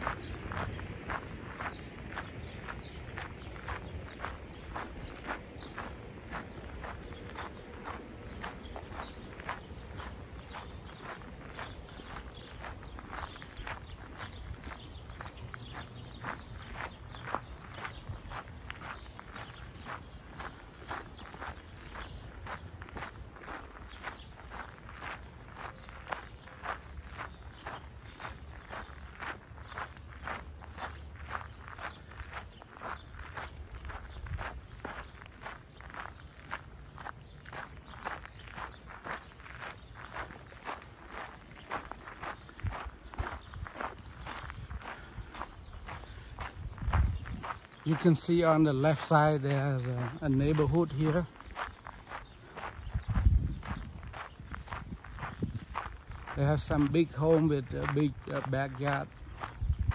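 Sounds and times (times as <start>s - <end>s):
footsteps on gravel: 0.0s - 59.9s.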